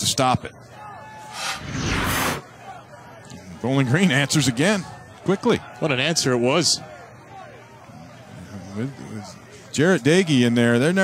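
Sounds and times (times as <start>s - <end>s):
broadcast transition whoosh: 1.2s - 2.4s.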